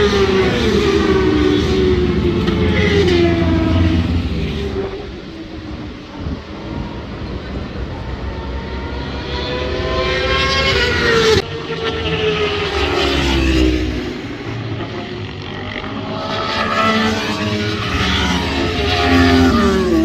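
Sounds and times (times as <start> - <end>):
motorcycle engine revving: 8.3 - 20.0.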